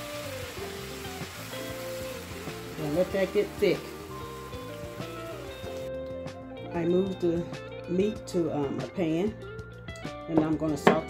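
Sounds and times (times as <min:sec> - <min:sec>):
beef sizzling in a skillet: 0:00.0 - 0:05.9
background music: 0:00.0 - 0:11.0.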